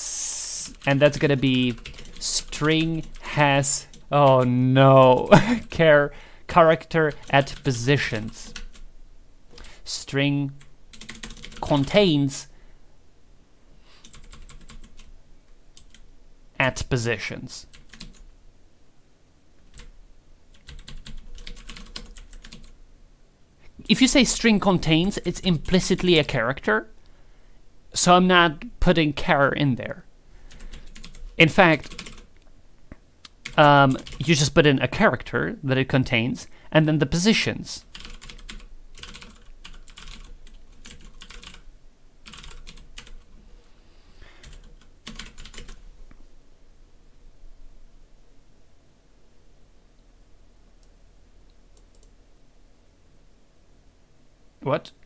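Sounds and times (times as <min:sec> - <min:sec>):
typing on computer keyboard: 0:00.7 - 0:03.2, 0:10.9 - 0:12.0, 0:14.0 - 0:15.1, 0:17.7 - 0:18.2, 0:20.6 - 0:22.8, 0:30.5 - 0:32.3, 0:33.4 - 0:34.2, 0:37.9 - 0:41.6, 0:42.2 - 0:43.3, 0:44.4 - 0:45.8.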